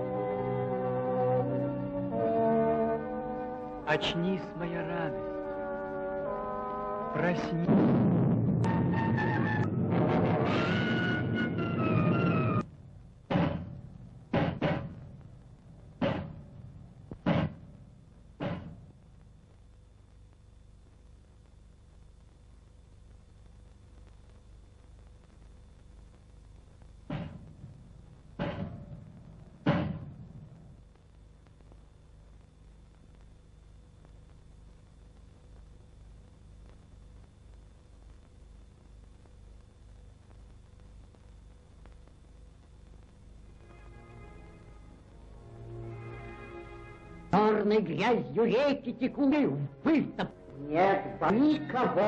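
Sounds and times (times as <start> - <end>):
brass sustained chords: 0.0 - 7.8, 43.5 - 48.4.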